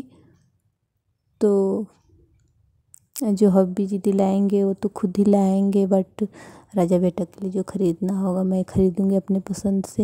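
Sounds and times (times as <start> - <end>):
woman speaking: 0.0 - 0.2, 1.4 - 2.1, 3.0 - 10.0.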